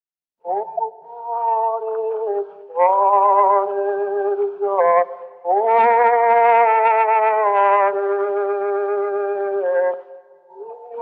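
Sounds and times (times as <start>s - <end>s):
man singing a long note: 0.4s - 11.0s.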